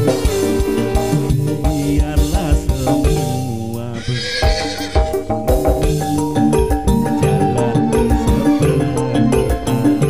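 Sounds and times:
electric guitar: 0.0 - 10.0
keyboard chords and melody: 0.0 - 10.0
low drum beats: 1.2 - 7.5
wavering whinny-like high sound: 4.0 - 5.3.

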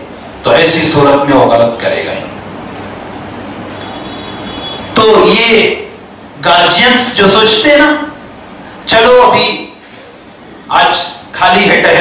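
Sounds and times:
faint high whine: 0.0 - 12.0
steady background noise: 0.0 - 12.0.

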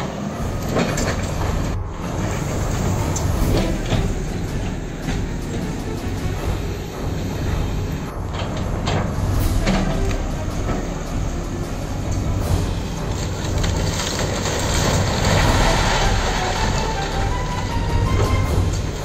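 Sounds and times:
heavy machinery diesel engine rumble: 0.0 - 19.0
masonry and timber crunching and falling: 13.1 - 19.0.

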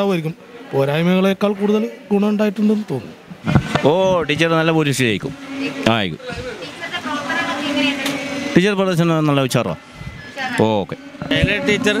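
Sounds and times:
man speaking into a microphone: 3.8 - 6.6, 8.5 - 12.0.

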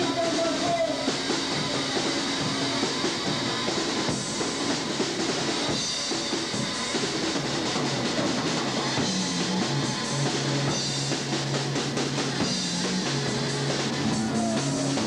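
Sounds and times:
drum kit: 0.0 - 15.0
electric guitar: 0.0 - 15.0.

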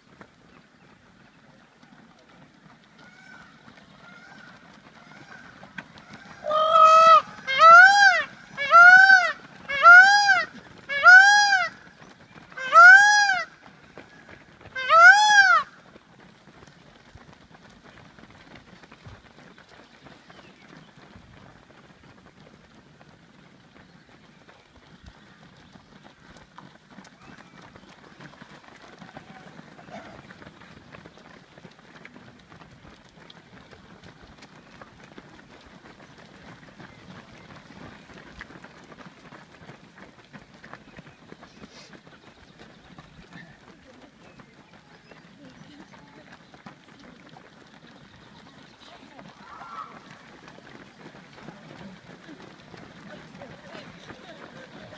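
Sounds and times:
runners' footsteps on gravel: 0.0 - 54.9
peacock wailing calls: 3.0 - 11.9, 12.5 - 13.5, 14.2 - 15.8, 49.3 - 50.2.

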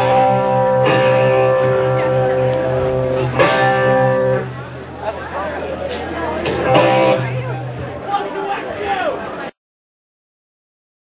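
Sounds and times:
held amplified note: 0.0 - 8.4
crowd chatter: 0.0 - 9.6.

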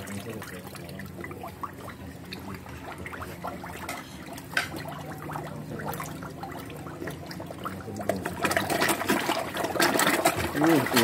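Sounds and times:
fish splashing and gulping: 0.0 - 11.0.

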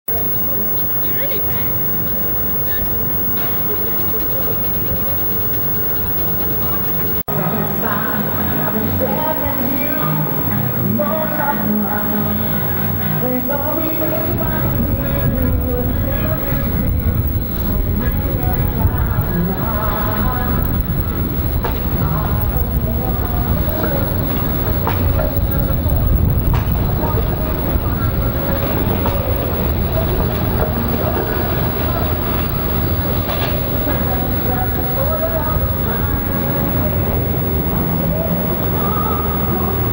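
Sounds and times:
city traffic rumble: 0.0 - 39.9
wheels clicking on rails: 0.1 - 39.9.

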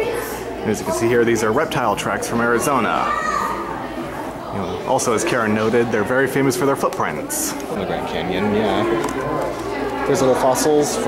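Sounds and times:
children and adults chattering: 0.0 - 11.0
child's high voice: 3.0 - 3.7.

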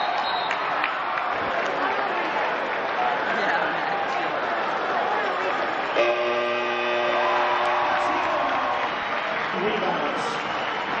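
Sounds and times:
crowd noise: 0.0 - 11.0
arena game horn blaring: 6.0 - 8.9.

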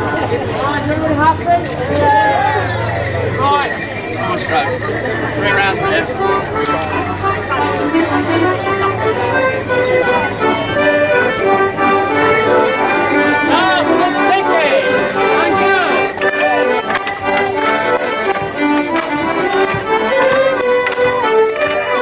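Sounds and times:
high jingling bells: 2.8 - 9.9, 15.0 - 22.0
fiddles and accordions playing: 3.4 - 22.0.

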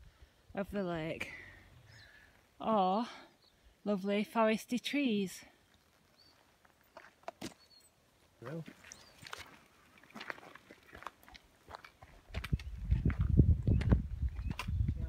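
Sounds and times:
footsteps crunching on gravel: 6.0 - 7.8, 8.4 - 15.0.

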